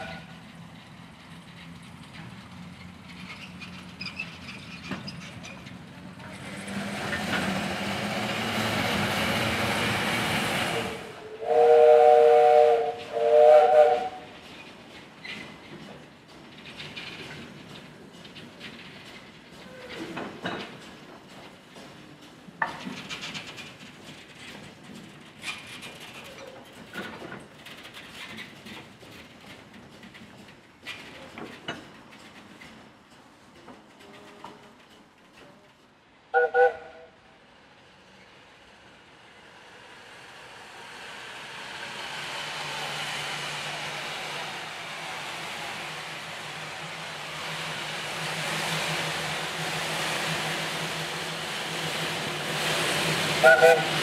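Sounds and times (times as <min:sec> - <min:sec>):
steam locomotive engine running: 0:00.0 - 0:26.3, 0:40.1 - 0:54.0
steam whistle toot: 0:10.8 - 0:14.3, 0:36.3 - 0:37.1, 0:53.4 - 0:54.0.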